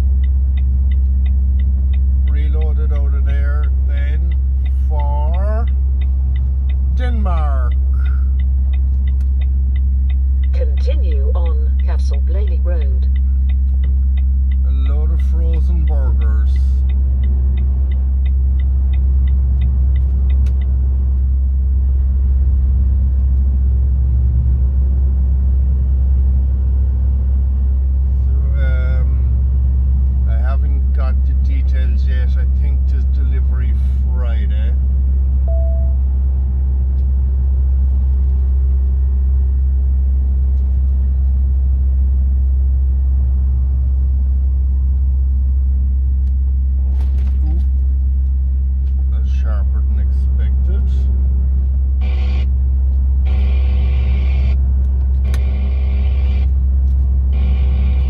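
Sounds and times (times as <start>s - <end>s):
lorry engine drone: 0.0s - 58.0s
turn signal ticking: 0.0s - 58.0s.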